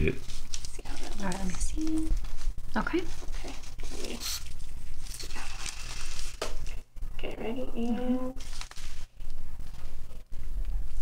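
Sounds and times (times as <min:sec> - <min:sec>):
paper and gauze crinkling: 0:00.0 - 0:06.9, 0:07.8 - 0:11.0.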